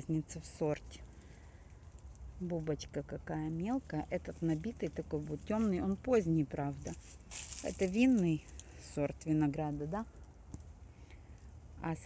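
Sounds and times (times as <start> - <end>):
woman speaking: 0.0 - 1.0, 2.4 - 7.0, 7.6 - 10.1, 11.8 - 12.0
low steady rumble: 0.0 - 12.0.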